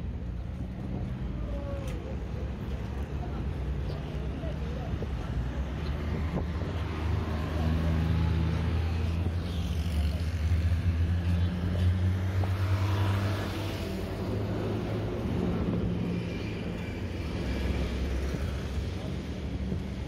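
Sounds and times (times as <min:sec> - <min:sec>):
surrounding cars: 0:00.0 - 0:20.0.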